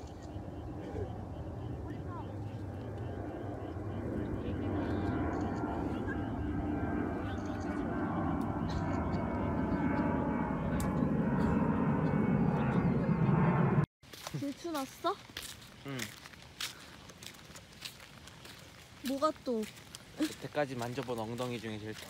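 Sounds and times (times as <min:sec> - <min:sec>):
airliner engine rumble overhead: 0:00.0 - 0:13.9.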